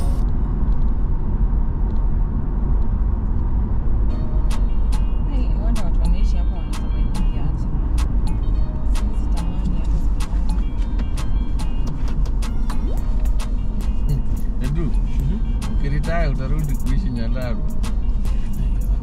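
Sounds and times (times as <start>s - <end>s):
vehicle engine rumble: 0.0s - 19.0s.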